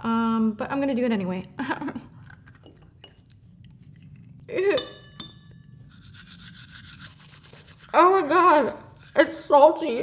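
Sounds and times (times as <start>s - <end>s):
woman laughing: 1.6s - 2.1s
faint chewing crunch: 2.1s - 4.5s
bright ringing clink: 4.8s - 5.8s.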